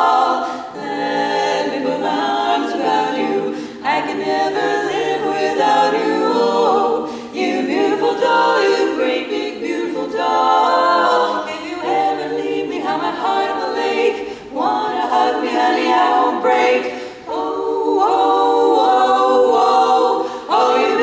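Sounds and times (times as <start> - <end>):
female quartet singing a cappella: 0.0 - 21.0.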